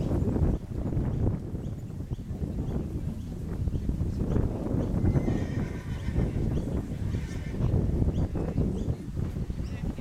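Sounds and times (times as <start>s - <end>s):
wind rumble on microphone: 0.0s - 10.0s
horse whinnying: 5.0s - 7.8s.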